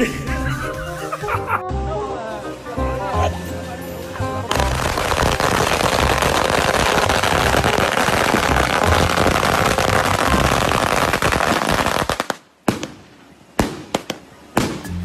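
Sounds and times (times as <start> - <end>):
firecrackers crackling: 4.5 - 14.9
single firecracker bangs: 13.6 - 14.9.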